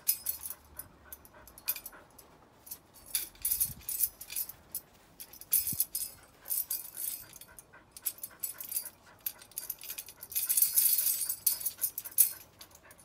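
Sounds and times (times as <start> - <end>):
dog panting: 0.2 - 2.4, 6.0 - 13.0
tambourine jingles rattling: 3.0 - 13.0.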